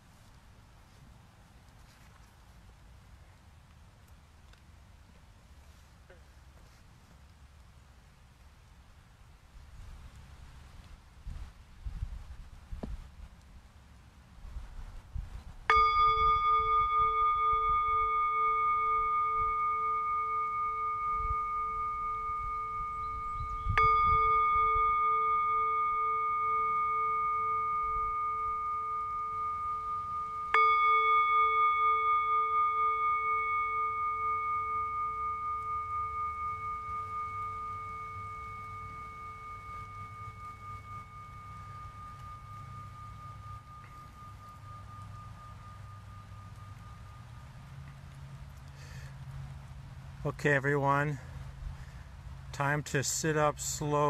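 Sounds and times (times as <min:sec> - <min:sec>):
singing bowl ringing: 0:15.7 - 0:49.1.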